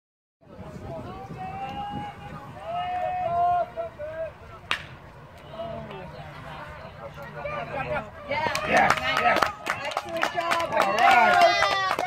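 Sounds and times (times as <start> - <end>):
baseball bat hitting ball: 4.7 - 5.0.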